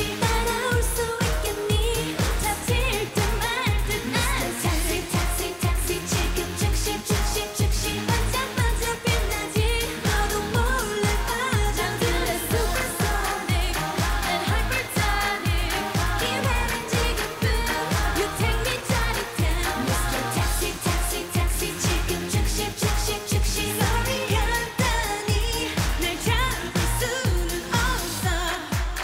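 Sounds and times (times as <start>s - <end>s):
dance-pop backing track: 0.0s - 29.0s
women singing live: 0.0s - 29.0s.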